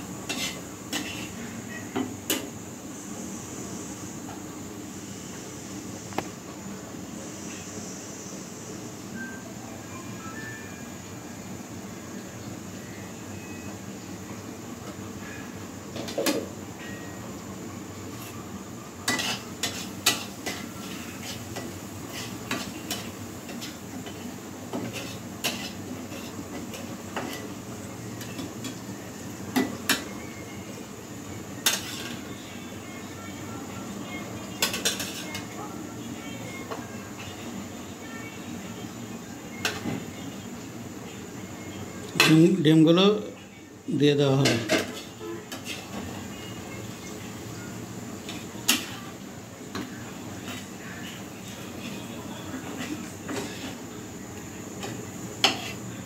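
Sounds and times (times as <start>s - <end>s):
metal spoon scraping frying pan: 0.2s - 1.4s, 19.0s - 27.5s, 31.6s - 32.2s, 34.6s - 35.5s, 44.4s - 46.0s, 52.7s - 53.8s, 55.4s - 55.8s.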